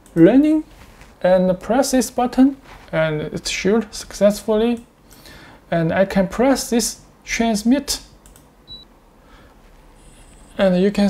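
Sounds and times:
low room noise: 0.0 - 11.0
faint clicks: 8.2 - 8.5.

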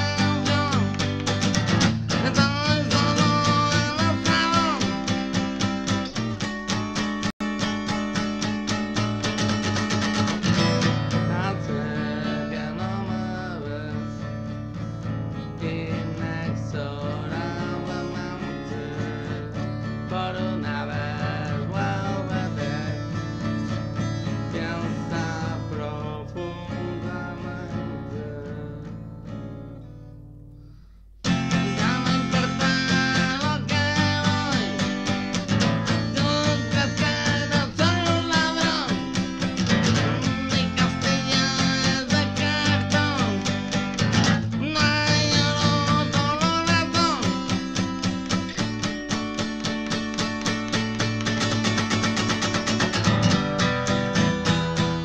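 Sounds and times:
acoustic guitar strummed: 0.0 - 55.0.

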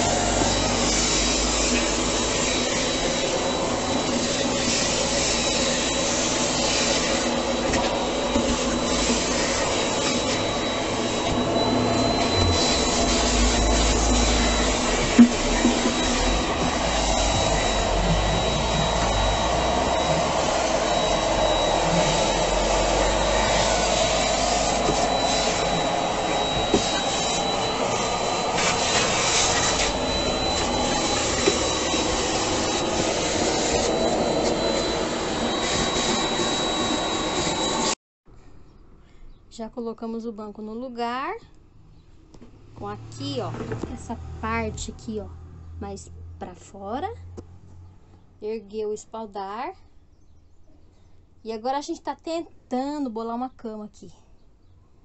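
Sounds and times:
vacuum cleaner running: 0.0 - 38.0.

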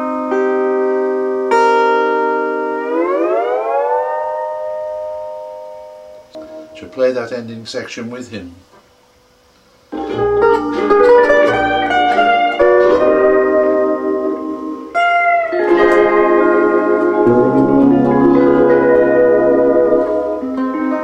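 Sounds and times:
steel guitar playing: 0.0 - 6.9, 9.9 - 21.0.

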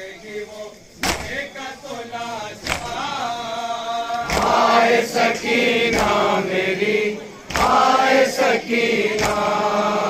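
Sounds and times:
men chanting a lament: 0.0 - 10.0
hands beating chests: 1.0 - 1.4, 2.6 - 3.1.

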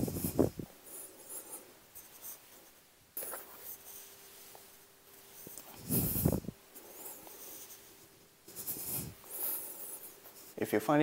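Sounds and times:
rustling on an exercise mat: 0.0 - 11.0.

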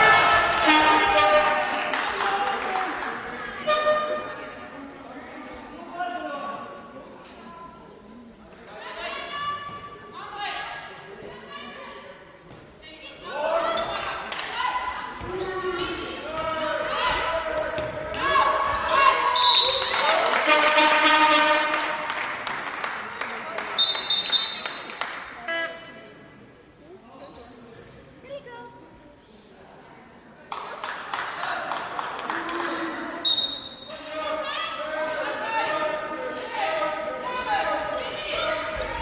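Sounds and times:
ball bouncing on court floor: 17.6 - 18.3
referee's whistle blasts: 19.2 - 21.7, 23.8 - 24.8, 33.2 - 34.0.

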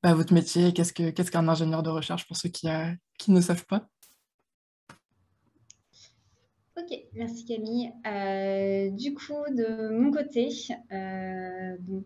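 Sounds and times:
woman speaking: 6.8 - 12.0.

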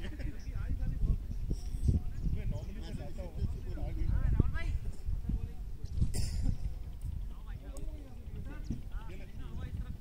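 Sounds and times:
distant voices calling and chatting: 0.0 - 10.0
steady low rumble: 0.1 - 10.0.

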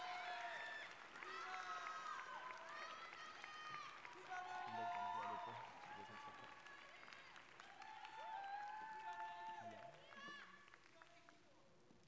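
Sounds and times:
voices calling out and cheering: 0.0 - 11.4
audience clapping: 0.0 - 11.6.

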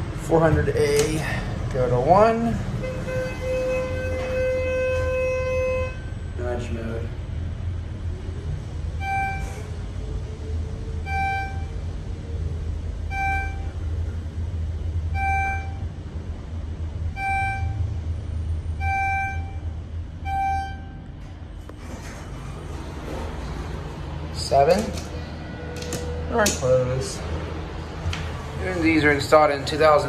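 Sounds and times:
elevator hum: 0.0 - 30.0
single-tone electronic beep: 9.0 - 9.7, 11.1 - 11.8, 13.1 - 13.8, 15.2 - 15.9, 17.1 - 18.0, 18.8 - 21.0.

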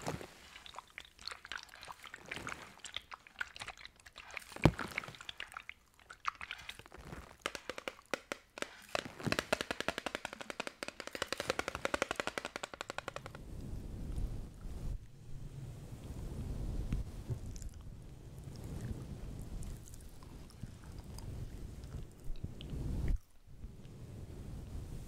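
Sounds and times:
fingernails tapping on a bottle: 7.4 - 13.4.

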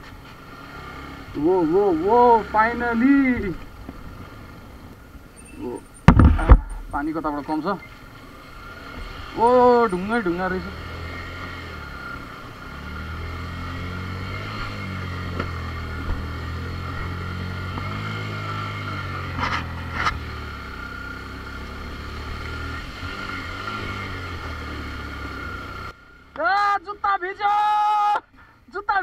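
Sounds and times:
motorcycle engine running: 0.0 - 27.2.

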